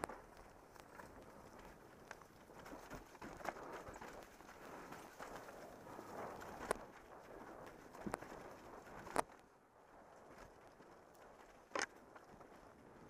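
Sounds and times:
bike tyres on dirt: 0.0s - 13.0s.

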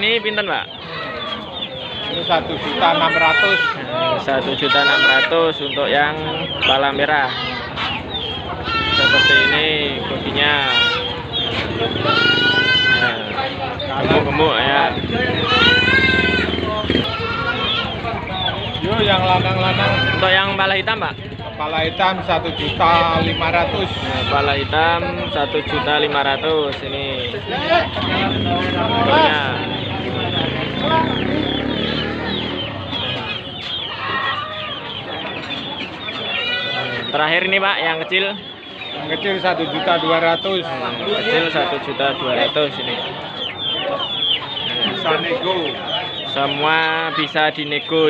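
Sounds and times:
chickens clucking: 0.0s - 48.0s
market noise: 0.0s - 48.0s
goat bleating: 2.6s - 5.5s, 7.2s - 7.9s, 8.6s - 9.9s, 10.6s - 11.2s, 11.8s - 13.6s, 15.3s - 18.2s, 19.4s - 20.8s, 23.0s - 24.8s, 36.2s - 37.4s, 40.8s - 41.9s.

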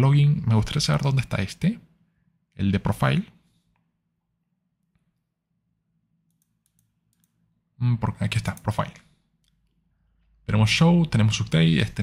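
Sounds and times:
man speaking: 0.0s - 1.9s, 2.6s - 3.4s, 7.8s - 9.2s, 10.4s - 12.0s
computer mouse clicks: 6.2s - 7.4s.

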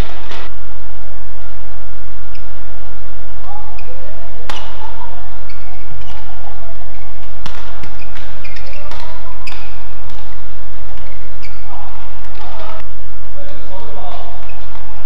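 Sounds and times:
low hum: 0.0s - 15.0s
rackets striking shuttlecock: 3.8s - 10.4s
shoes squeaking on court: 6.9s - 10.3s, 11.0s - 12.6s.

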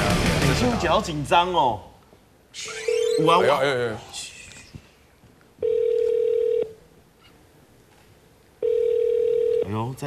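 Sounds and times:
telephone ringback tone: 5.6s - 6.8s, 8.6s - 9.7s.

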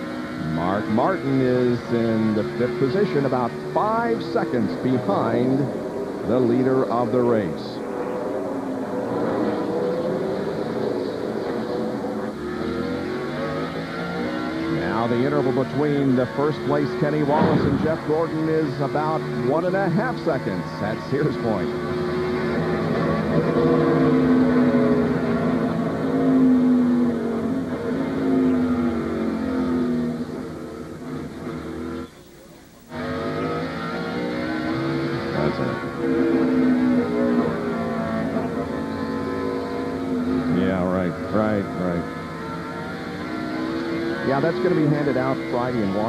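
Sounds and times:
race car engine at speed: 0.0s - 46.0s.

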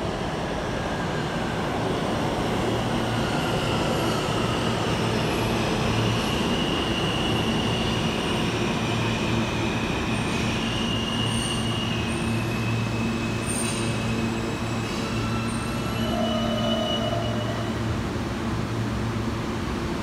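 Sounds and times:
subway train rumble: 0.0s - 20.0s
high wheel squeals: 4.0s - 17.9s.

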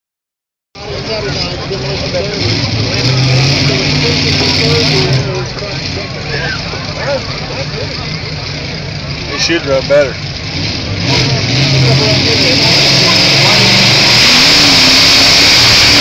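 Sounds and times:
crowd chatter: 0.8s - 16.0s
tractor engine running: 0.8s - 16.0s.

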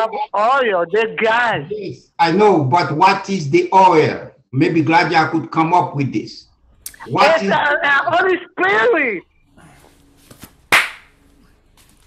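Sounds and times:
sharp smack: 10.7s - 11.1s.

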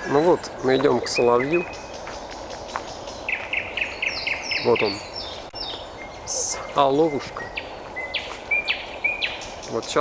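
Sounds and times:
nightingale singing: 0.0s - 10.0s.

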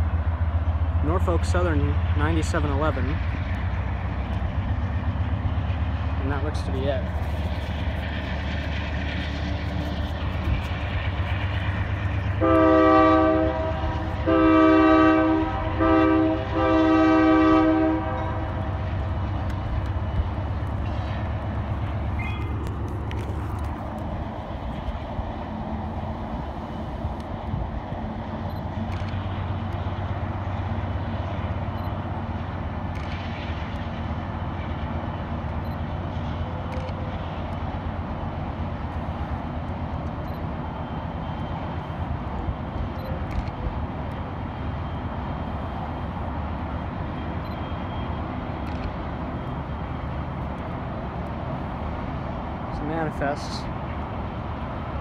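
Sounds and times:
freight train rumbling past: 0.0s - 55.0s
locomotive air horn blasts: 12.4s - 18.8s.

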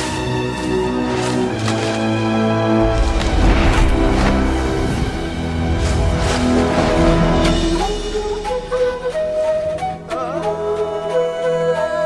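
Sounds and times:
flute melody: 6.4s - 12.0s.

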